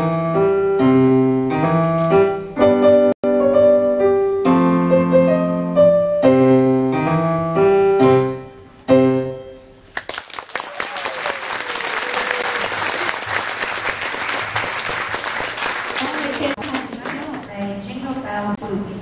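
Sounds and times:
blues piano chords: 0.0 - 9.9
audience applause: 9.9 - 17.6.

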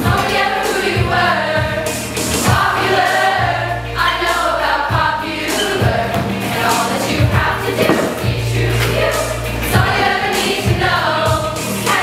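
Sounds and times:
group singing pop song: 0.0 - 12.0.

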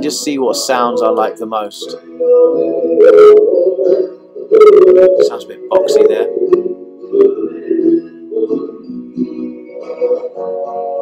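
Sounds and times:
reverb of sung vocal: 0.0 - 10.3.

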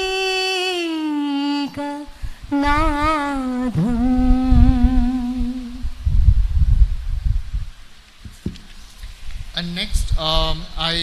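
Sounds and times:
woman singing solo: 0.0 - 6.0.

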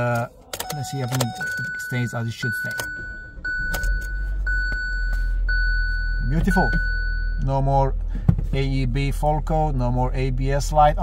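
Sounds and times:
seatbelt reminder chime pinging: 0.6 - 7.5.

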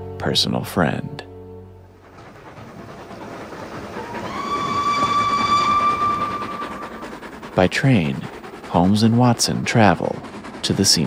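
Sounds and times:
steam train running: 0.0 - 11.0
steam whistle long note: 4.0 - 7.2.

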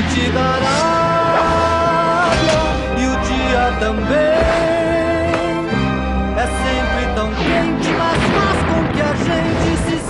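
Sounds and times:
cartoon theme music: 0.0 - 10.0
fire and explosion effect: 7.3 - 10.0.

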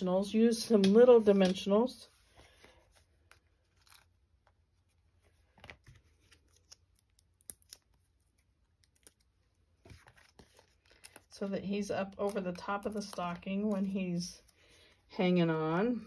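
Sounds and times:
paper rustling: 1.2 - 15.0.

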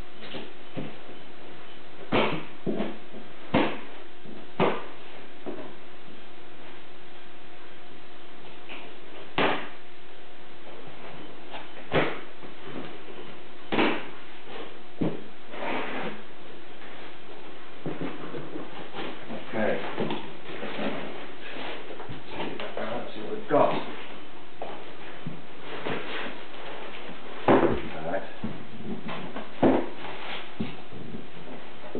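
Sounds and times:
cardboard flaps scraping and rustling: 10.8 - 16.2, 16.8 - 22.9, 24.9 - 31.9
knocks on cardboard box: 27.5 - 30.0.

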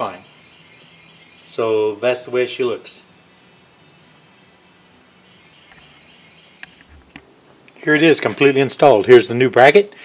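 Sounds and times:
faint high chirping: 0.0 - 7.2.

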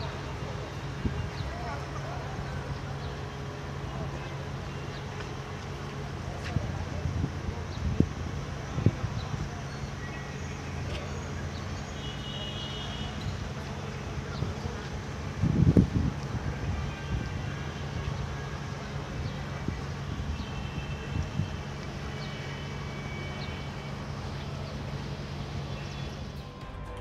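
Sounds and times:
engine rumble: 0.0 - 27.0
low engine drone: 21.7 - 27.0.

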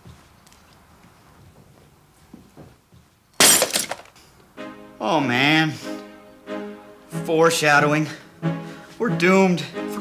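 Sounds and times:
glass shattering: 3.4 - 4.1.

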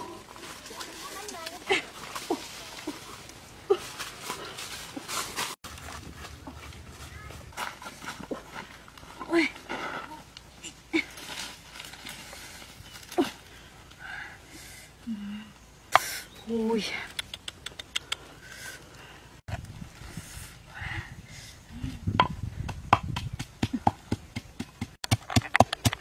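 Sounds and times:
faint outdoor background: 0.0 - 26.0.

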